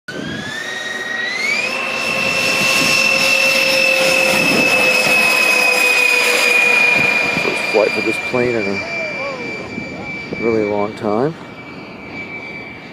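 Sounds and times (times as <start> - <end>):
model jet turbine whine: 0.1 - 12.9.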